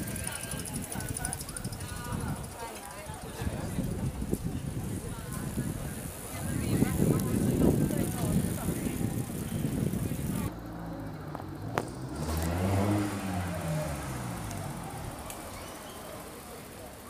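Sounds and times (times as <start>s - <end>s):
low street rumble: 0.0s - 17.0s
car passing by: 11.6s - 16.9s.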